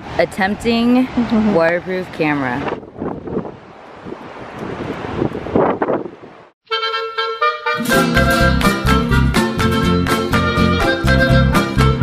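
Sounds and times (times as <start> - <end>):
wind buffeting microphone: 0.0 - 6.5.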